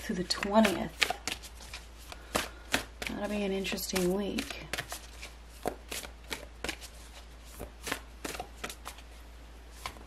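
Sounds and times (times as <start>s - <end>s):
cards being shuffled: 0.1s - 9.1s, 9.7s - 10.0s.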